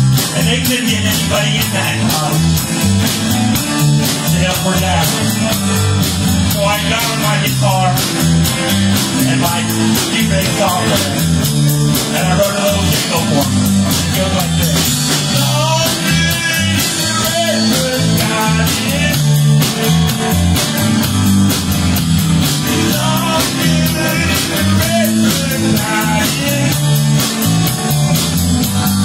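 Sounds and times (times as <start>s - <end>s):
instrumental rock song: 0.0s - 29.0s.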